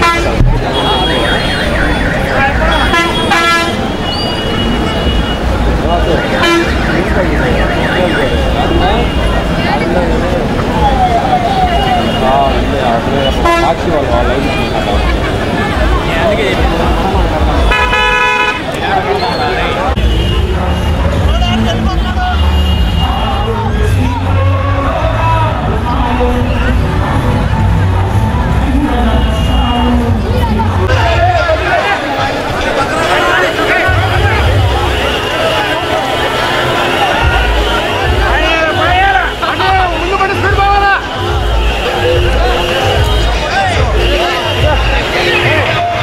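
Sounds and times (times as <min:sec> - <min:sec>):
vehicle horn: 0:00.0 - 0:07.0, 0:13.2 - 0:15.1, 0:17.6 - 0:18.8, 0:21.6 - 0:23.6, 0:28.9 - 0:30.1, 0:33.0 - 0:45.8
crowd shouting and chattering: 0:00.0 - 0:46.0.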